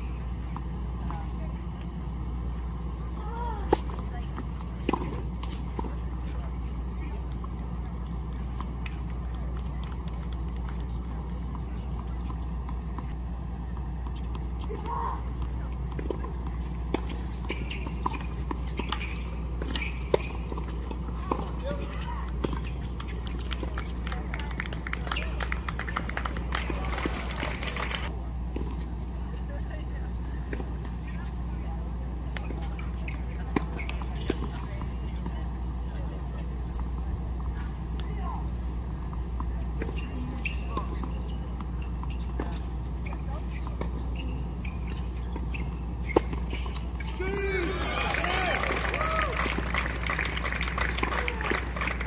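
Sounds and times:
low outdoor rumble: 0.0s - 52.0s.

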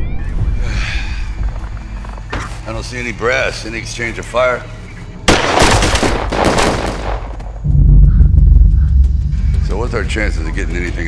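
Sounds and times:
deep low rumble: 7.6s - 11.0s.

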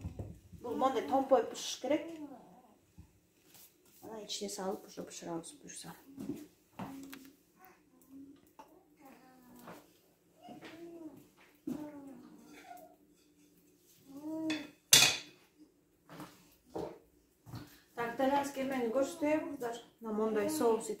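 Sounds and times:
kitchen utensils clattering: 14.5s - 15.4s.

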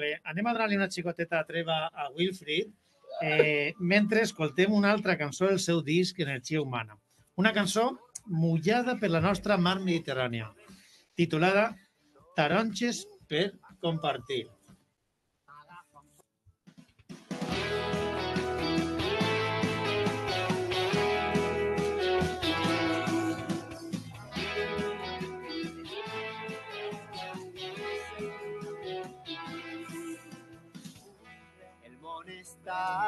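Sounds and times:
instrumental song opening: 17.4s - 31.0s.

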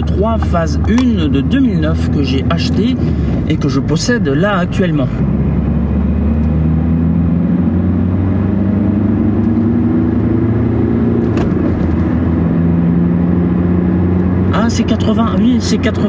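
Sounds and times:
diesel engine and tyre drone: 0.0s - 16.0s.

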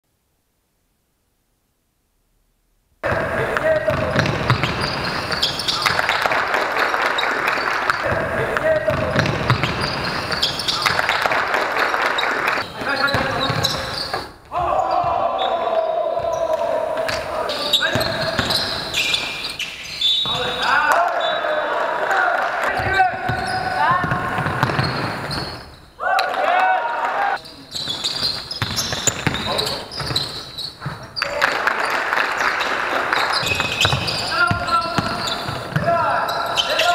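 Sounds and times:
basketball bouncing on floor: 3.0s - 6.4s, 7.9s - 11.4s, 22.8s - 25.6s, 28.2s - 31.1s, 33.4s - 36.0s
players shouting: 14.5s - 19.0s, 20.3s - 24.6s, 26.0s - 27.4s, 32.6s - 36.9s.

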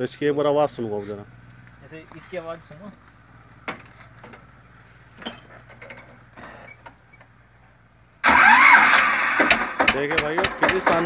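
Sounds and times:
tractor diesel engine running: 0.5s - 11.0s.

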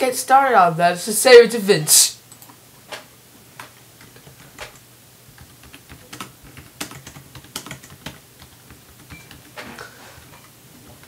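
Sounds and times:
keyboard typing: 3.6s - 10.3s.

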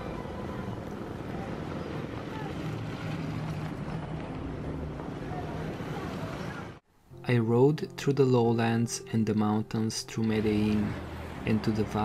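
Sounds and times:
motorbike and car engines passing: 0.0s - 6.8s, 10.2s - 12.0s.

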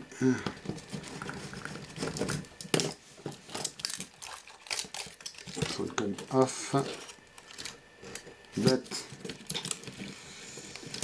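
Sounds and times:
small clicks and rustles of wiring: 0.6s - 11.0s.

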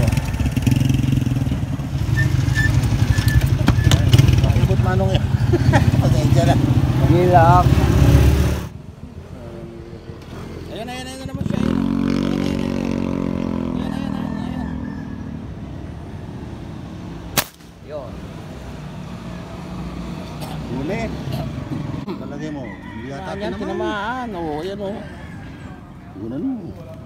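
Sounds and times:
vehicle engine passing: 0.0s - 22.1s.

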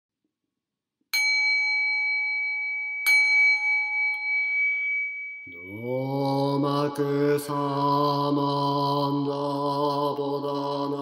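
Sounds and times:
bell ringing: 1.2s - 6.0s.

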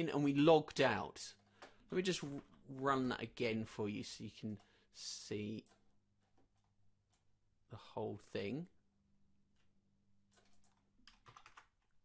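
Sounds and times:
faint keyboard typing: 1.2s - 2.8s, 4.4s - 7.4s, 9.5s - 12.0s.

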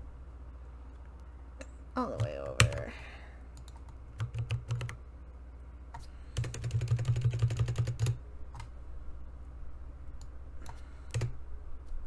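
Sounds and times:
typing on computer keyboard: 3.6s - 5.0s, 6.4s - 8.7s, 10.6s - 11.3s.

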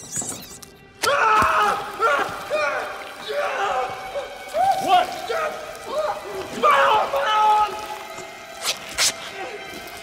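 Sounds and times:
film score: 0.0s - 10.0s
cloth shirt tearing: 8.6s - 9.3s.

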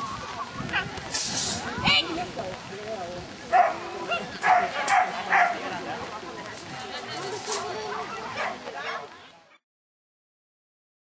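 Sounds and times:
small dog barking: 3.5s - 5.6s, 7.9s - 9.1s.

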